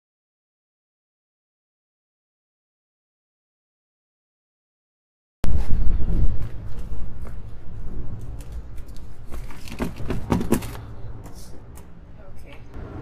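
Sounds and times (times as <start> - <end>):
wind buffeting microphone: 5.4 - 9.3.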